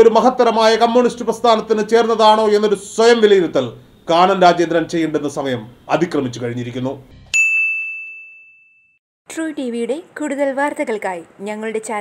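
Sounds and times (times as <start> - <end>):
bright bell-like ding: 7.3 - 9.0.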